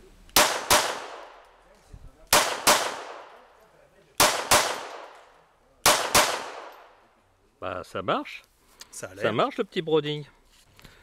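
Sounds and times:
pistol shots with ringing tail: 0.4s - 1.4s, 2.3s - 3.4s, 4.2s - 5.2s, 5.8s - 7.0s.

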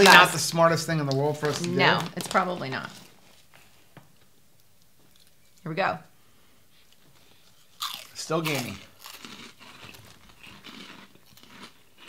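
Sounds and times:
chewing crunchy pork rind: 7.7s - 12.0s.

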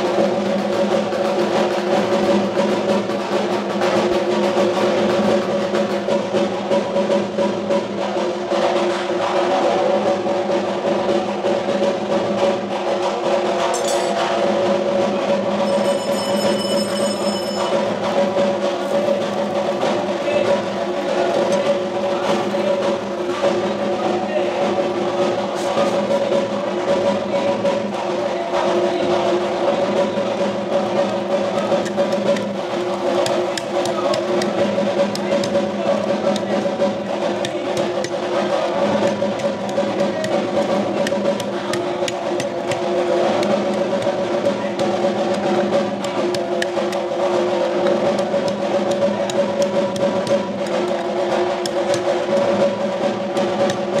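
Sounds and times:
drums beating fast rhythm: 0.0s - 54.0s
metallic bell ringing: 15.6s - 18.0s.

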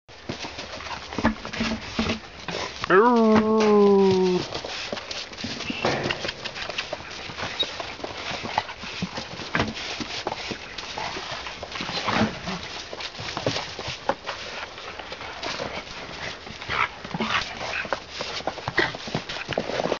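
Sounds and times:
puppies scuffling on snow: 0.1s - 20.0s.

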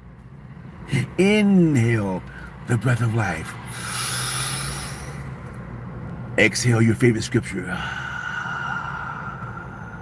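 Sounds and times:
low steady hum: 0.0s - 10.0s
person inhaling deeply: 3.7s - 5.4s, 7.7s - 10.0s.

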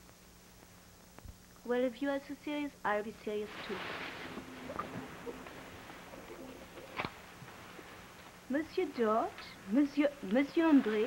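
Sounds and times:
faint film hiss: 0.0s - 11.0s.

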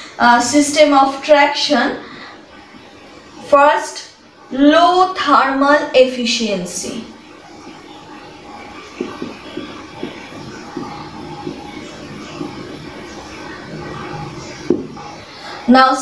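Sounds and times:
low room hum: 0.0s - 16.0s
marker pen writing on whiteboard: 7.4s - 15.6s.

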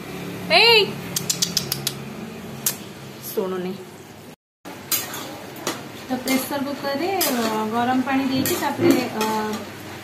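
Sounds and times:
sharp clicks: 1.1s - 2.0s.

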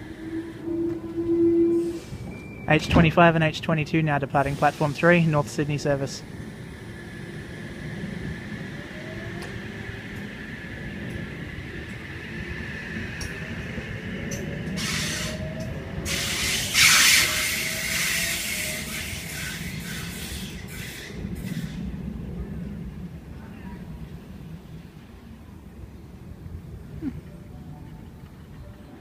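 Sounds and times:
electric train motors whining: 0.0s - 3.4s, 4.2s - 21.9s
rumble of train wheels: 0.0s - 29.0s
loud hissing burst: 4.4s - 5.8s.

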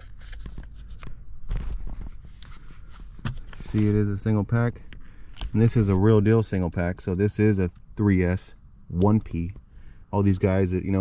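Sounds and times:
light clicks and scraping: 0.0s - 6.8s.

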